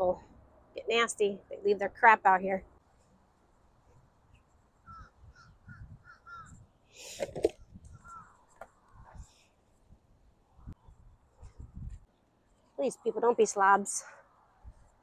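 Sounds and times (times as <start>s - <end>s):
bird calling: 4.8s - 6.6s, 7.9s - 9.0s.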